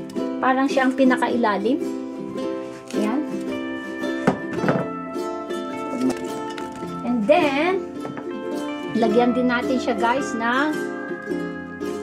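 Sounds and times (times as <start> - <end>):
background music with plucked strings: 0.0 - 12.0.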